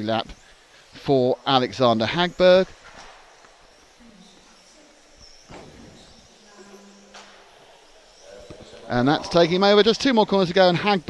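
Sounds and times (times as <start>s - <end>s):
distant indistinct voices: 0.0s - 11.0s.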